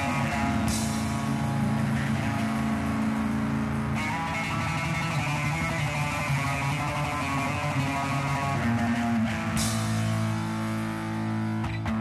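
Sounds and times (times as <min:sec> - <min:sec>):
electric guitar: 0:00.0 - 0:12.0
rock band playing: 0:00.0 - 0:12.0.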